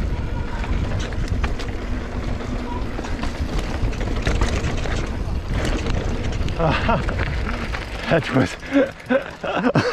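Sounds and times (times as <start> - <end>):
wind rumbling on microphone: 0.0 - 9.6
bike tyres crunching on gravel: 0.0 - 9.7.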